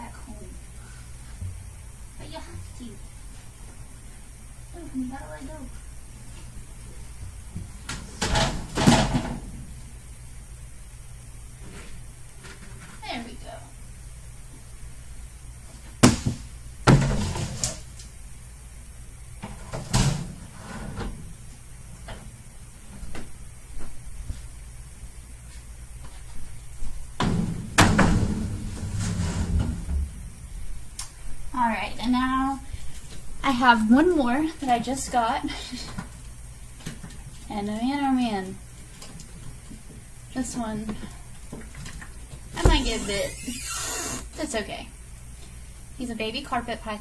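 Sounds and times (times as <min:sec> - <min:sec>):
glass door sliding scrape: 0:20.5 - 0:21.2, 0:28.1 - 0:30.2.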